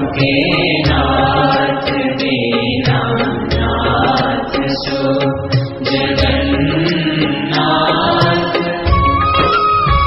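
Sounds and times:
low drum beats: 0.0s - 2.1s, 2.7s - 10.0s
chanted hymn singing: 0.0s - 9.5s
instrumental accompaniment: 0.0s - 10.0s.

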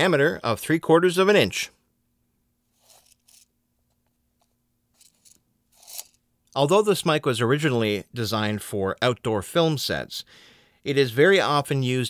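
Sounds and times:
faint steady hum: 0.0s - 12.0s
measuring tape rustling and clicking: 2.8s - 6.2s.

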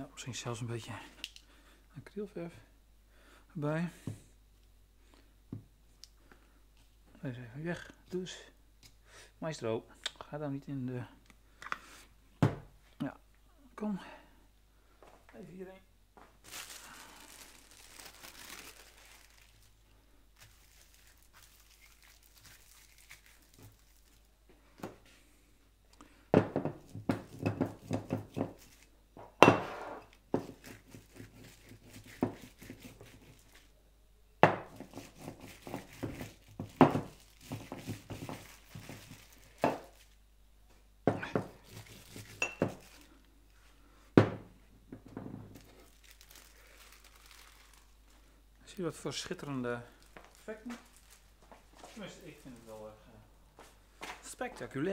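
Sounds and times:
plastic film crinkling: 16.4s - 24.3s, 27.2s - 28.9s, 30.1s - 33.7s, 34.7s - 40.2s, 41.4s - 43.2s, 45.5s - 48.2s, 49.1s - 53.0s
plastic dabbing on paper: 20.4s - 24.3s, 27.1s - 28.9s, 30.1s - 33.7s, 34.6s - 40.2s, 41.2s - 43.2s.

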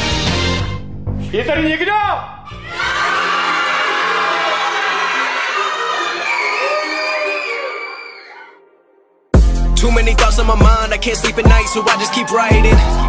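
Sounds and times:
children cheering and shouting: 2.5s - 8.6s, 11.4s - 13.0s.

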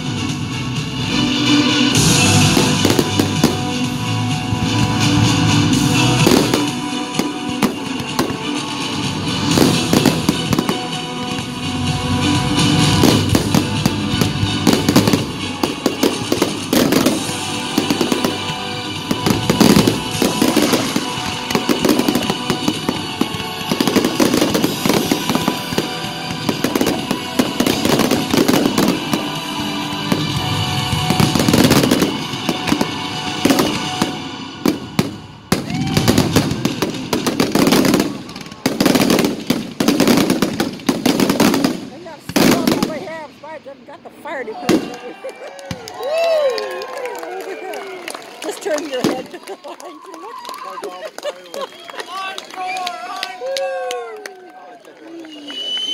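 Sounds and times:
music playing: 0.0s - 50.7s
firework bursts and crackling: 0.0s - 54.0s.

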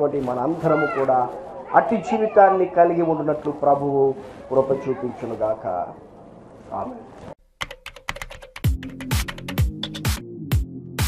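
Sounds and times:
computer keyboard typing: 7.6s - 9.6s
electronic music beat: 7.6s - 11.0s.

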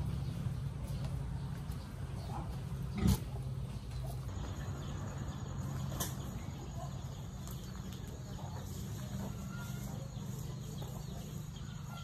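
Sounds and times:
pig grunting: 2.7s - 3.5s.

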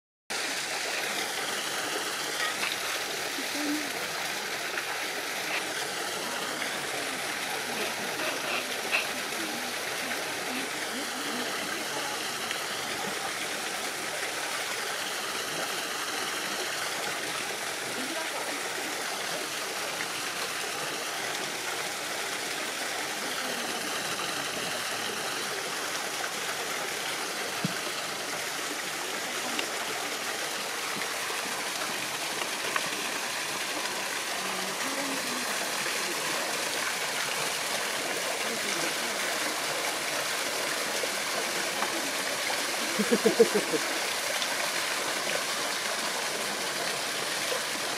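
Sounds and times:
water splashing onto rocks: 0.3s - 15.7s.

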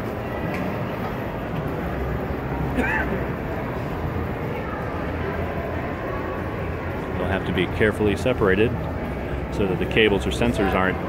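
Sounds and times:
crowd murmur and chatter: 0.0s - 11.0s.

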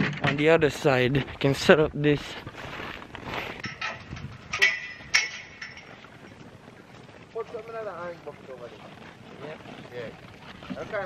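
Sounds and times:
outdoor background noise: 0.0s - 11.0s
sharp metallic clinks: 3.6s - 6.4s.

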